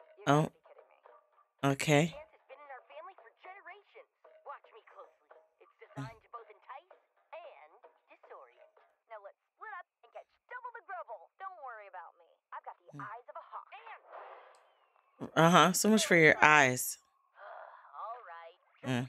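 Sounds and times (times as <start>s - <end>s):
cartoon dialogue: 0.3s - 0.5s, 1.6s - 2.2s, 15.2s - 17.0s.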